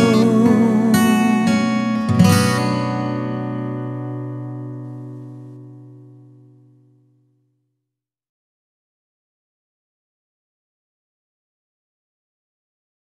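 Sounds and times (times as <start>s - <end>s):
acoustic guitar playing: 0.0s - 7.5s.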